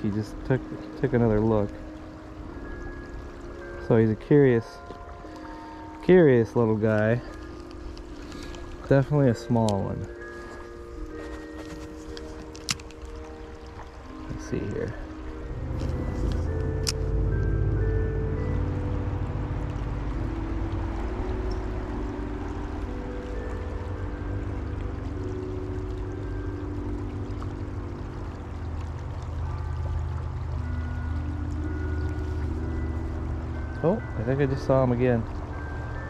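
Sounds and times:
music with bell-like notes: 0:00.0 - 0:36.0
stream water rushing: 0:00.0 - 0:36.0.

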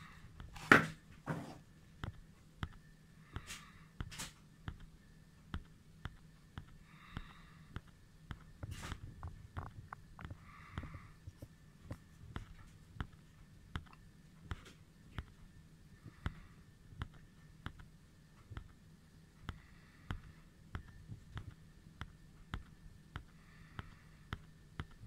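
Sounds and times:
faint low hum: 0:00.0 - 0:25.0.

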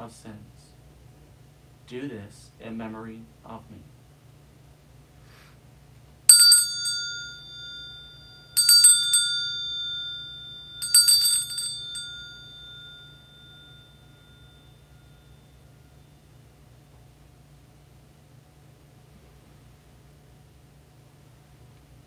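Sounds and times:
altar bells ringing: 0:06.3 - 0:16.2.

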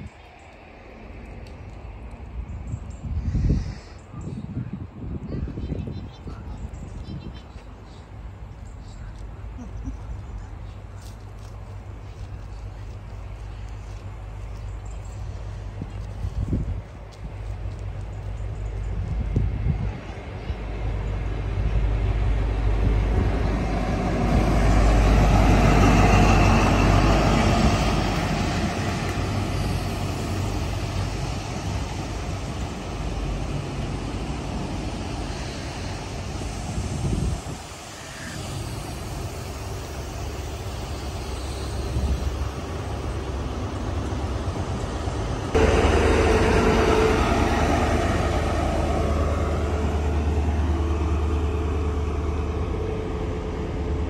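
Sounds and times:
train passing at speed: 0:00.0 - 0:54.0
coaches rushing over rails: 0:07.6 - 0:54.0
diesel engine humming: 0:17.4 - 0:54.0.

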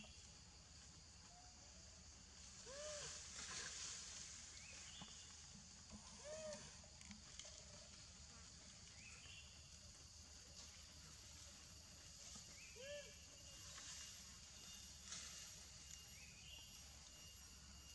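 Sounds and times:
high insect hiss: 0:00.0 - 0:17.9.

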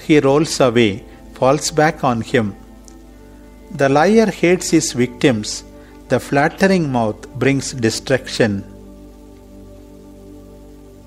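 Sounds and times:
soft background music chords: 0:00.0 - 0:11.0.

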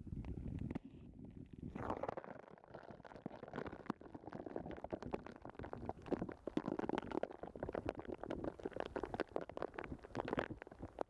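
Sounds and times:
underwater clicks and gurgles: 0:00.0 - 0:11.0.

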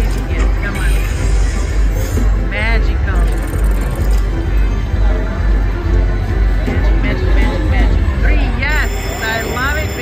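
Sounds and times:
slot machine bonus music: 0:00.0 - 0:02.4, 0:08.7 - 0:10.0.

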